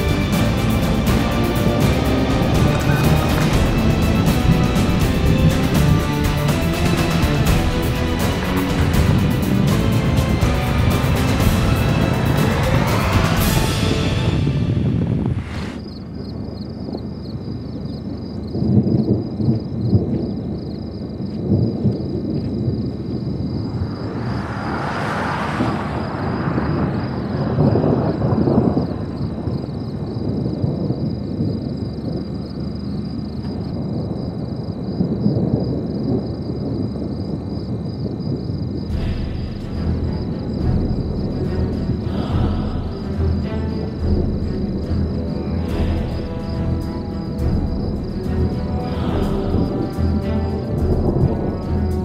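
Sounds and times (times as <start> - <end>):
wind gusting on microphone: 0.0 - 52.0
low thunder rumbles: 1.6 - 52.0
hiss: 15.2 - 15.9.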